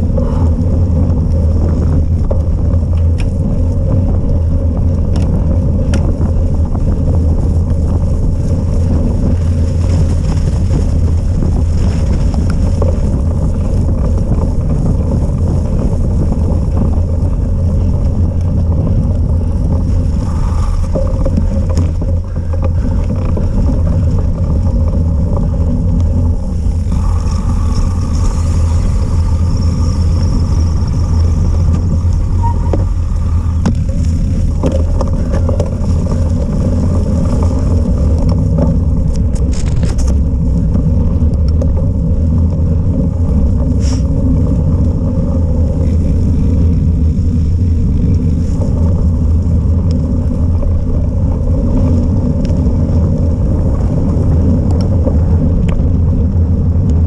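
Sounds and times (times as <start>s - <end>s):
bike tyres rolling on forest path: 0.0s - 57.0s
wind buffeting microphone: 0.0s - 57.0s.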